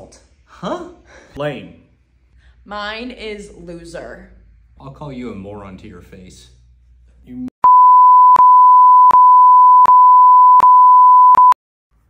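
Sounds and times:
censor bleep tone: 7.6s - 11.6s.

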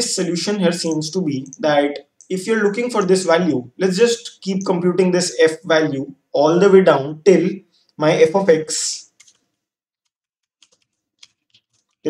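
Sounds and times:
faint keyboard typing: 9.0s - 12.0s.

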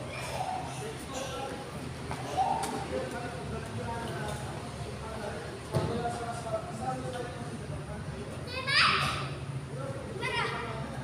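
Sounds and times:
child shouting: 8.5s - 9.4s, 10.2s - 10.6s.

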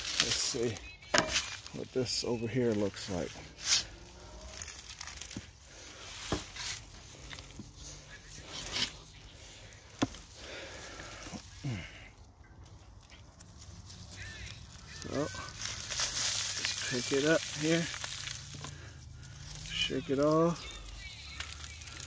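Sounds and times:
soil and dry leaves rustling: 0.0s - 22.0s.

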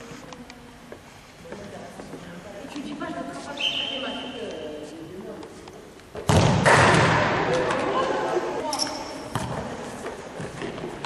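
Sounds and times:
ball kicked hard: 6.2s - 7.4s.

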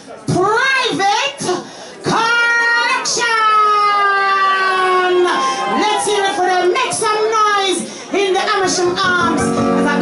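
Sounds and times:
woman singing through a microphone: 6.2s - 10.0s.

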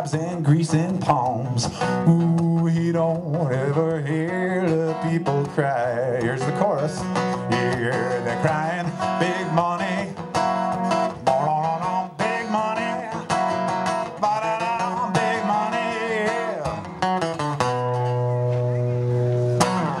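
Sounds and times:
person singing: 0.0s - 17.0s, 19.6s - 20.0s
acoustic guitar strumming: 0.0s - 20.0s.

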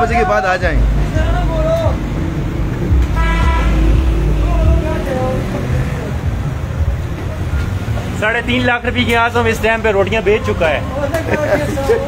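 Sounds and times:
vehicle engine rumbling: 0.0s - 12.0s
car horn: 2.9s - 6.0s.

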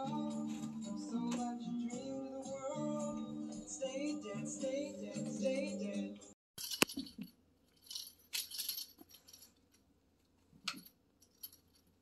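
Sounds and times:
light rattling and rustling: 6.6s - 9.8s.

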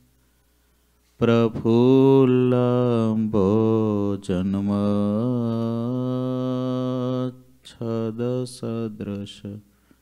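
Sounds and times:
man chanting: 1.2s - 9.7s.

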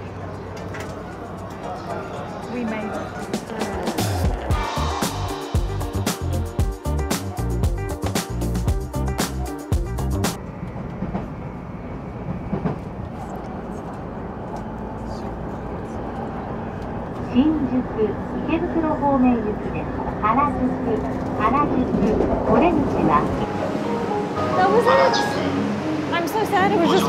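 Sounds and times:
voices talking: 1.0s - 5.0s, 17.2s - 23.6s, 24.4s - 27.0s
train rumbling inside carriage: 9.9s - 27.0s.

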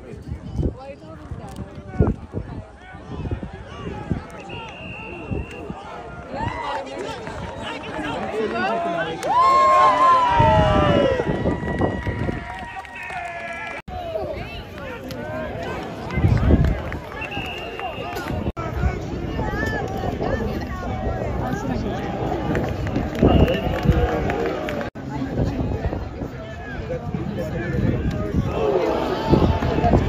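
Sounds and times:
voices of players and onlookers: 0.0s - 30.0s.

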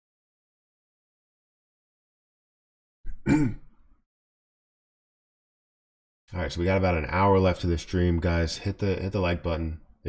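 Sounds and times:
man clearing his throat: 3.1s - 3.8s.

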